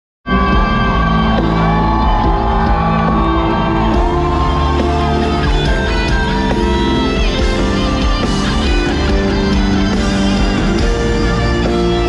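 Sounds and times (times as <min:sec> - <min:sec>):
crowd shouting along: 0:00.3 - 0:12.0
live concert music over pa: 0:00.3 - 0:12.0.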